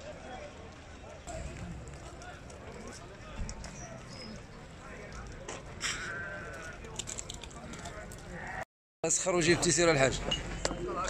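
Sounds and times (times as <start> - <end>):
murmur of market voices: 0.0 - 11.0.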